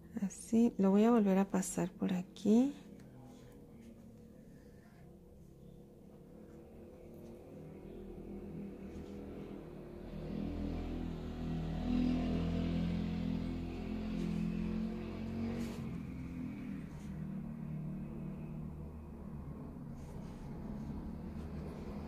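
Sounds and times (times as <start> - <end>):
low motor hum: 2.5 - 22.0.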